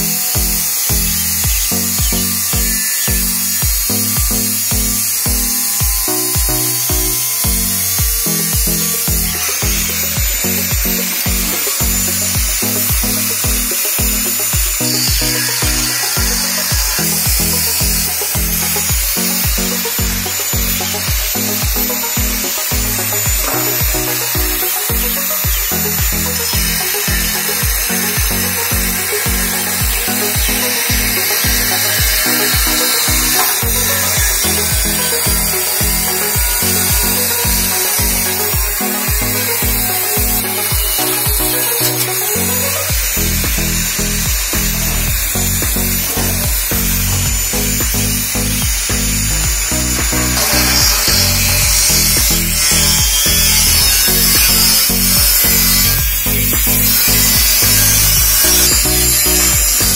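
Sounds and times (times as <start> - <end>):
angle grinder cutting metal: 0.0 - 59.9
background music with steady beat: 0.0 - 59.9.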